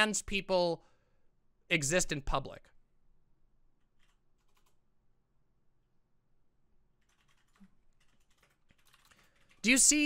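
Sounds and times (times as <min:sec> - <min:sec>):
computer keyboard typing: 0:03.8 - 0:04.9, 0:07.0 - 0:10.0.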